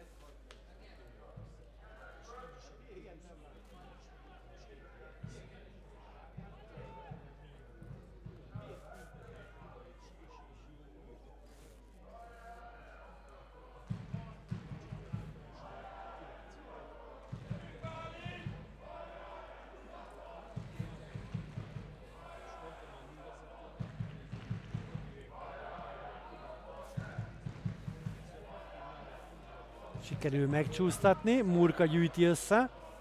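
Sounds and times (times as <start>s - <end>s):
faint football supporters chanting: 0.0s - 33.0s
drumbeats: 13.9s - 16.3s, 17.2s - 33.0s.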